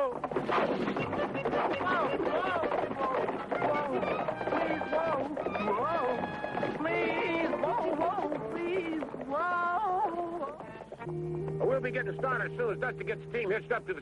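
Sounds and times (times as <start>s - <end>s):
background music score: 0.1s - 14.0s.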